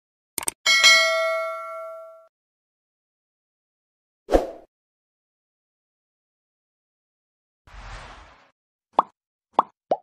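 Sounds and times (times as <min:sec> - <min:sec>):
short whoosh: 0:07.7 - 0:08.5.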